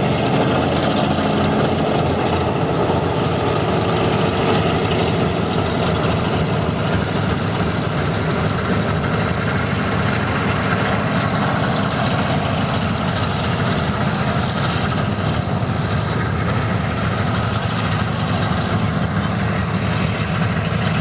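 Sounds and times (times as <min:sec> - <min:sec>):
propeller aircraft engines droning: 0:00.0 - 0:21.0.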